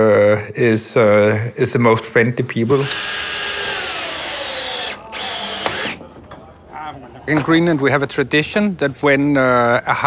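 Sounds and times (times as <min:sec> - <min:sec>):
power drill whining: 0:02.7 - 0:06.0.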